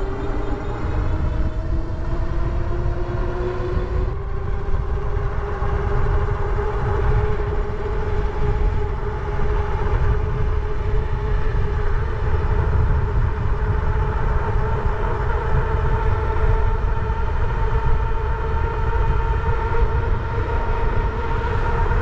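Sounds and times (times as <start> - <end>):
wind rumble on microphone: 0.0 - 22.0.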